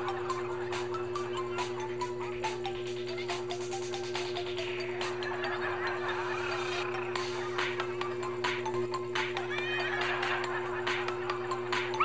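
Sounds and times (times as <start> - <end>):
music with steady beat: 0.0 - 12.0
high wavering cry: 9.4 - 10.4.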